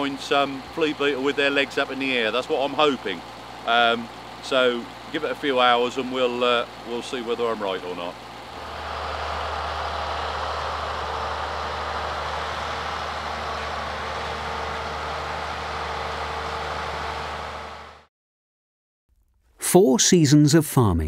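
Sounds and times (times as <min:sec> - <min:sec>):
crop sprayer engine humming: 0:00.0 - 0:18.1.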